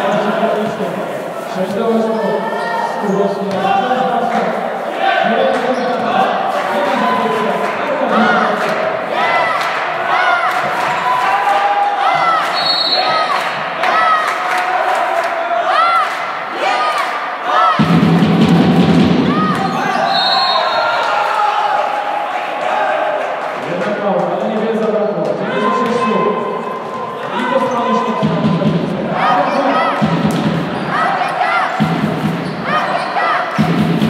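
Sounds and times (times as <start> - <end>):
murmur of voices: 0.0 - 34.0
shoes squeaking on hardwood floor: 12.2 - 13.3
referee's whistle: 12.5 - 13.3, 19.6 - 21.1.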